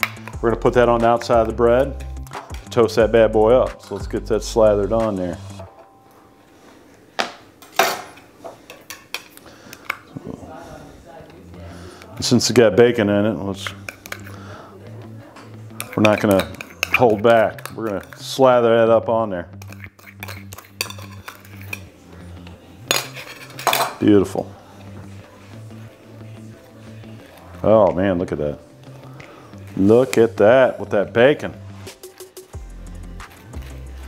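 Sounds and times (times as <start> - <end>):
utensils clinking on metal bowl: 7.7 - 10.1, 13.6 - 14.6, 15.4 - 18.4, 19.6 - 24.2.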